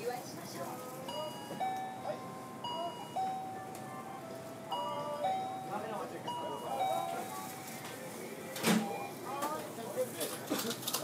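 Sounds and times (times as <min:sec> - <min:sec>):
murmur of voices: 0:00.0 - 0:11.0
electronic chime melody: 0:01.1 - 0:03.8, 0:04.7 - 0:07.4.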